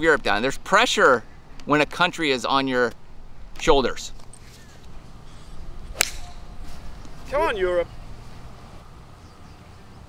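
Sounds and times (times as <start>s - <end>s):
golf club striking ball: 5.8s - 6.6s.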